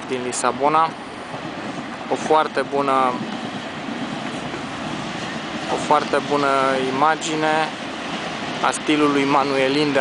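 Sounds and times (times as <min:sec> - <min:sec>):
passing train: 0:00.0 - 0:10.0
traffic noise: 0:00.0 - 0:10.0.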